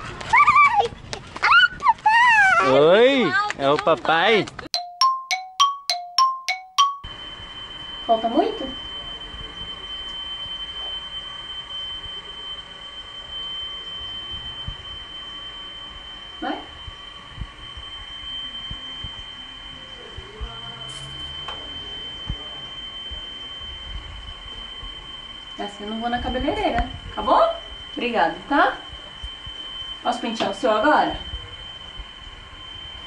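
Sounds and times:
steady high-pitched whine: 0:06.8 - 0:33.0.

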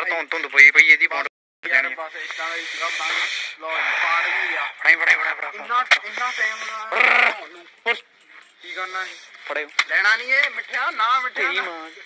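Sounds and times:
people talking: 0:00.0 - 0:12.0
hissing noise: 0:02.1 - 0:04.8.

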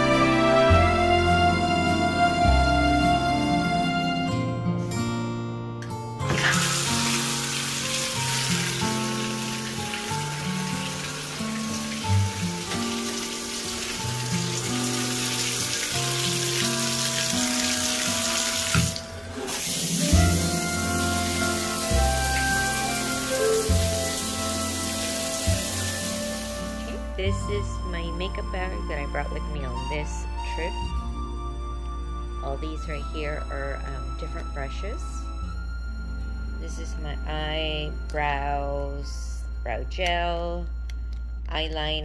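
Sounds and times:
background music: 0:00.0 - 0:42.0
water running from bathtub tap: 0:06.3 - 0:27.2.

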